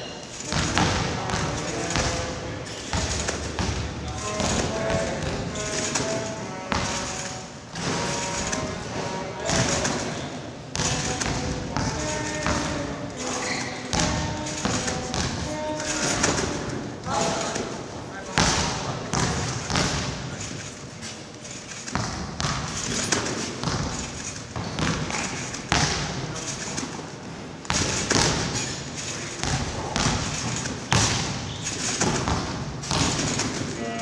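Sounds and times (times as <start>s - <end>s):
trampoline bed thudding: 0.4s - 20.8s, 21.4s - 34.0s.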